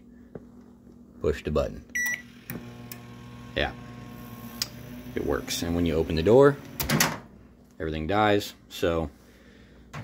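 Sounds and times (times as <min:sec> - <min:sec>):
microwave humming: 0:01.9 - 0:07.5
microwave keypad beep: 0:02.0 - 0:02.3.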